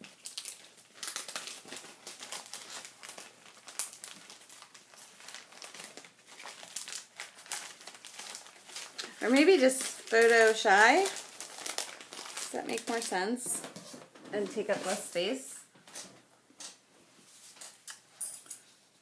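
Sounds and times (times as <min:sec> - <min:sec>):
paper sheets rustling: 0:01.0 - 0:17.6
woman speaking: 0:09.1 - 0:11.2, 0:12.5 - 0:13.6, 0:14.3 - 0:15.7.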